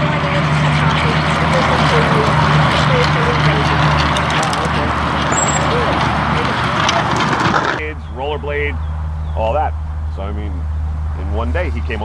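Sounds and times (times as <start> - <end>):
highway traffic noise: 0.0 - 12.0.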